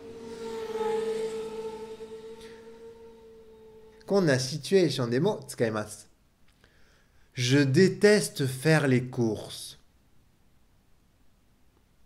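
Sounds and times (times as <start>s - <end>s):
racing car engine note: 0.0s - 5.2s.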